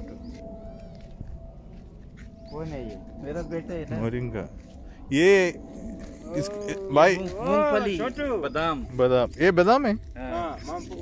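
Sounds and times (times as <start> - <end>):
low rumble: 0.0 - 11.0
thin steady hum: 0.0 - 11.0.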